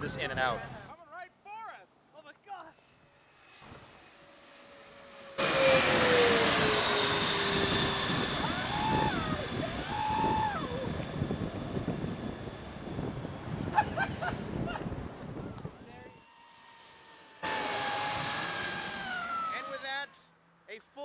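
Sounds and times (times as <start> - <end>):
jet airliner passing overhead: 2.8 - 20.2.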